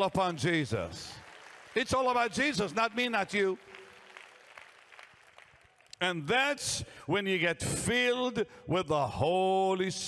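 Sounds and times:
faint audience applause: 0.0s - 6.0s.

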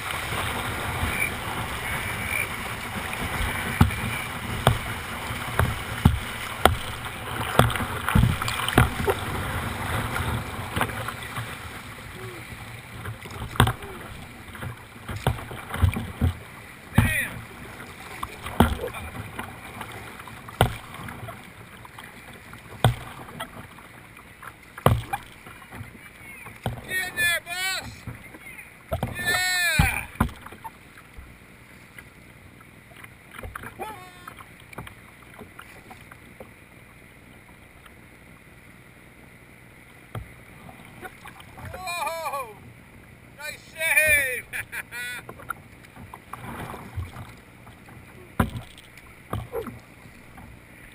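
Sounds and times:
whitewater rushing: 0.0s - 14.7s, 15.4s - 21.2s, 26.8s - 28.0s, 29.1s - 30.2s, 33.6s - 34.4s, 41.0s - 42.6s, 43.4s - 45.3s
water splashing against hull: 0.0s - 50.9s
voices calling out: 26.2s - 30.2s, 41.0s - 42.7s, 43.4s - 45.3s.

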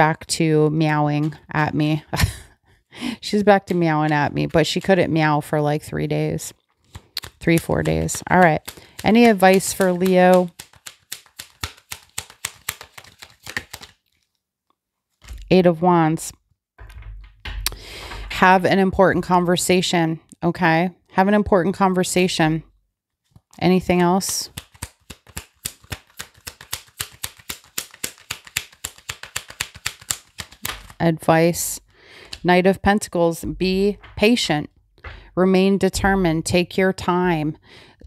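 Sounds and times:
cards being shuffled by hand: 3.3s - 14.4s, 23.2s - 31.2s, 32.2s - 32.5s.

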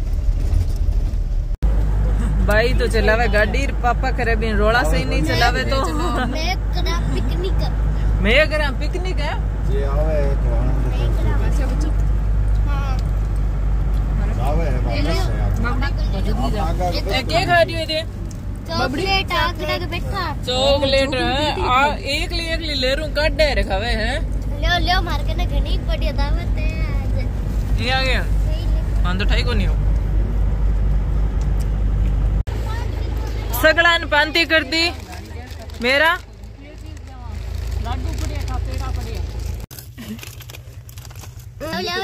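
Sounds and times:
engine and road noise rumble: 0.0s - 42.0s
women's and children's voices: 2.4s - 9.5s, 32.5s - 39.4s, 41.6s - 42.0s.

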